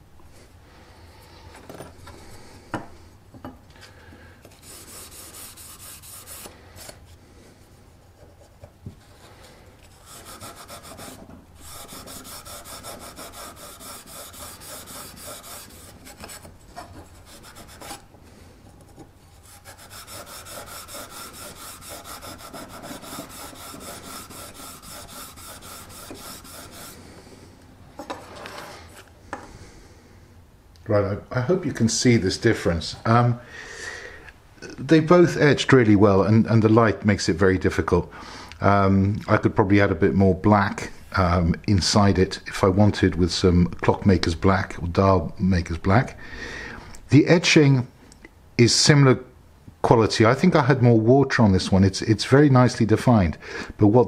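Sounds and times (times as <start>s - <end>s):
abrasive pad scrubbing steel blade: 4.6s - 6.5s, 10.0s - 16.5s, 19.4s - 27.0s.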